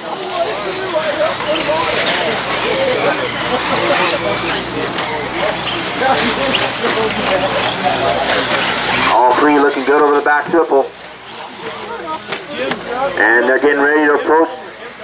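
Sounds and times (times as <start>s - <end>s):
electric rc cars running on dirt: 0.0s - 15.0s
indistinct voices talking: 0.0s - 15.0s.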